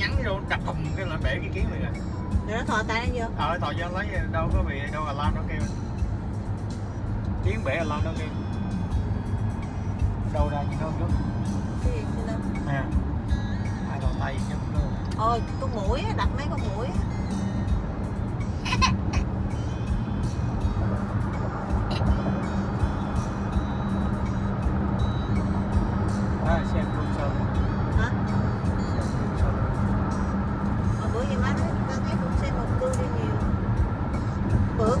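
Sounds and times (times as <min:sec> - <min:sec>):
car road and engine rumble: 0:00.0 - 0:35.0
music playing: 0:00.0 - 0:35.0.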